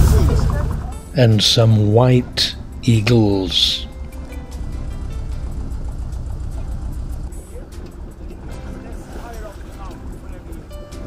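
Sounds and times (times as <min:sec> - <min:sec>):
motorboat engine rumbling: 0:00.0 - 0:11.0.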